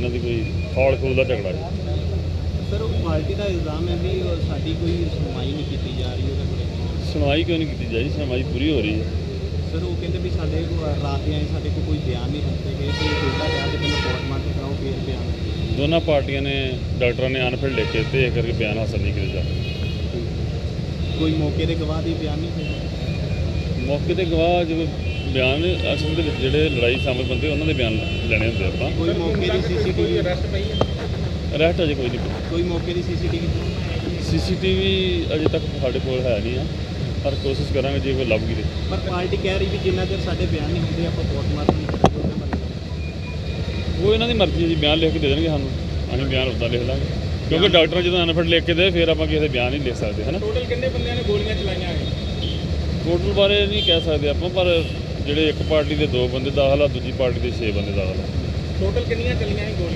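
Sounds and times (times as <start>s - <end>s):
people talking: 0.0s - 19.6s, 21.0s - 22.9s, 23.8s - 42.9s, 43.8s - 52.3s, 53.0s - 59.9s
street traffic rumble: 0.0s - 59.9s
man's voice: 24.2s - 30.7s, 31.5s - 36.7s.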